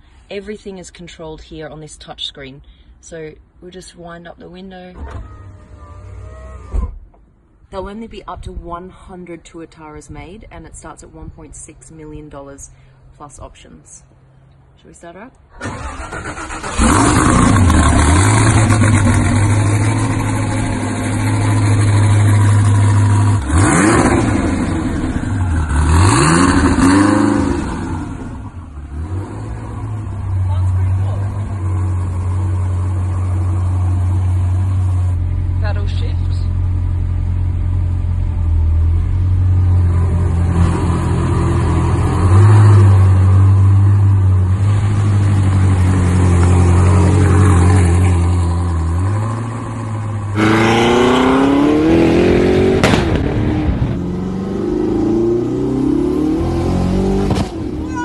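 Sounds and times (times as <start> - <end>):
sports car engine idling and revving: 16.8 - 58.0.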